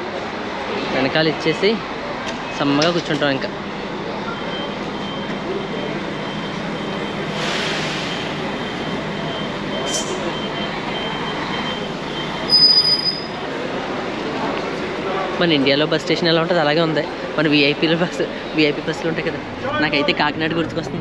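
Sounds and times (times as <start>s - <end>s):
rumble of coaches: 0.0s - 21.0s
loud high-pitched beep: 4.3s - 13.4s
faint high beeping: 4.3s - 13.5s.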